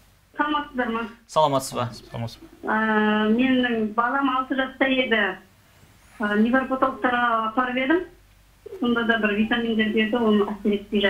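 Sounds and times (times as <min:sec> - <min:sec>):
person talking: 0:00.9 - 0:03.4.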